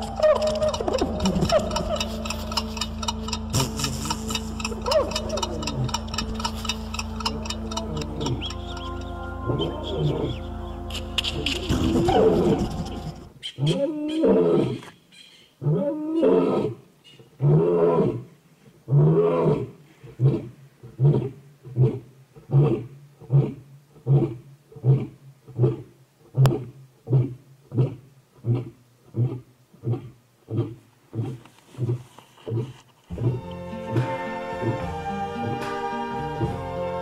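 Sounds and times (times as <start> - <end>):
lion roaring: 0.0 - 14.8, 18.9 - 37.0
lion grunting calls: 0.0 - 18.2, 18.9 - 36.7.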